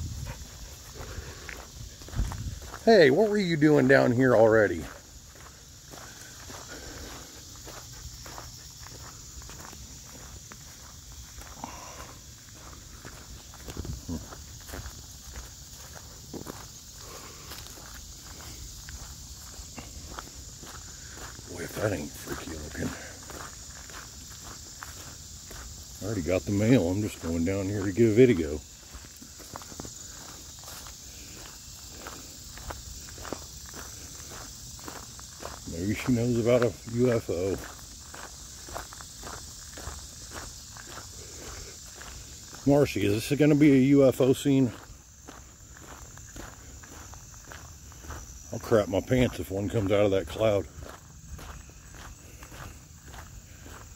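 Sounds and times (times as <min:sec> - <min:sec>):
footsteps on dirt track: 0:00.0 - 0:53.9
high-pitched insect chorus: 0:00.0 - 0:53.9.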